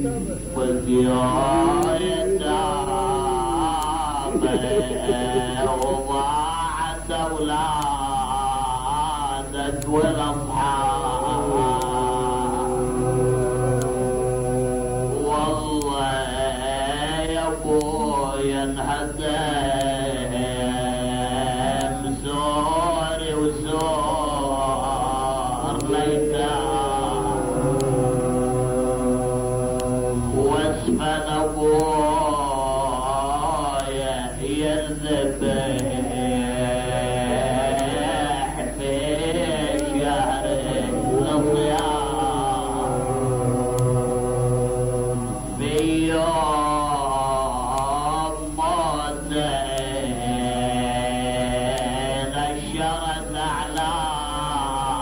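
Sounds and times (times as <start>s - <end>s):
low recording hum: 0.0s - 55.0s
man chanting melodically: 0.0s - 55.0s.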